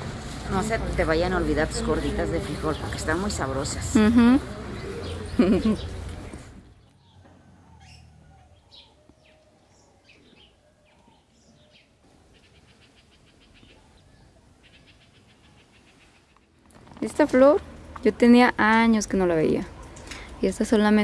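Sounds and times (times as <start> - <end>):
songbird chirps and trills: 1.4 - 21.0.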